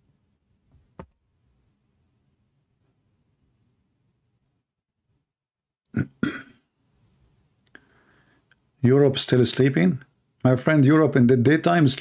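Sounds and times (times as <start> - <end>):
person throat noises: 5.9 - 6.7.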